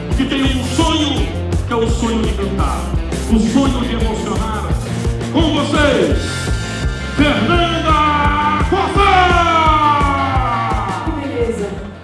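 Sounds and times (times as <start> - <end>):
drum and bass beat: 0.0 - 12.0.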